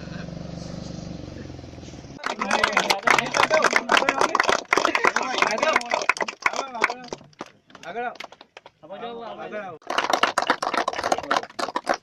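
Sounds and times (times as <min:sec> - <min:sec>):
engine idling hum: 0:00.0 - 0:02.8.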